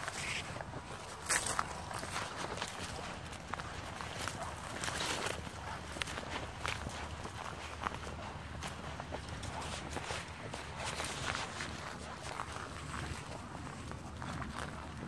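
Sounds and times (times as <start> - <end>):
footsteps crunching through grass and snow: 0.0 - 15.0.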